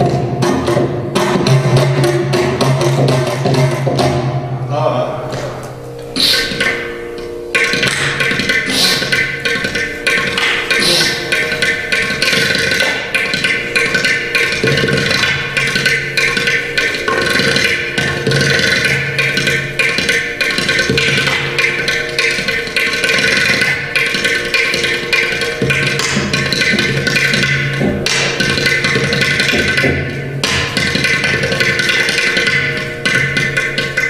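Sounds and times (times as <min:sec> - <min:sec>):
hand drum and clay pot rhythm: 0:00.0 - 0:34.0
steady drone: 0:00.0 - 0:34.0.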